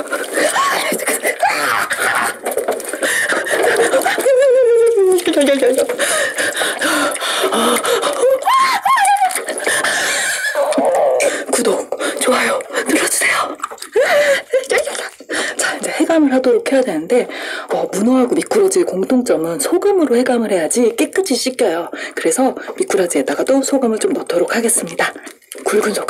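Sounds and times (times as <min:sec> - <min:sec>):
woman squealing and laughing: 0:00.4 - 0:02.4, 0:03.9 - 0:05.8, 0:08.2 - 0:09.5.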